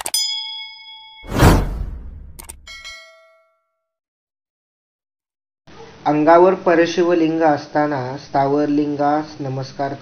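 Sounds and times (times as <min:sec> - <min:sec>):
bright bell-like ding: 0:00.1 - 0:01.3, 0:02.4 - 0:03.7
sharp click: 0:01.3 - 0:02.7
whoosh: 0:01.3 - 0:02.8.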